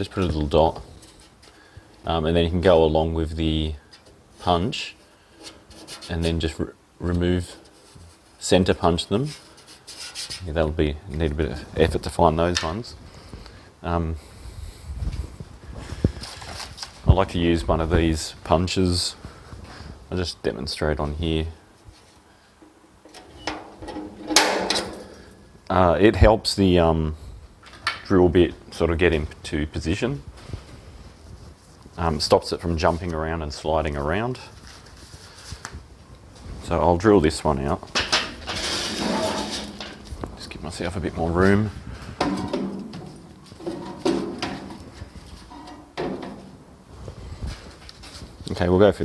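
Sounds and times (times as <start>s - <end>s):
handling knocks and rattles: 22.6s - 25.6s, 37.8s - 46.8s.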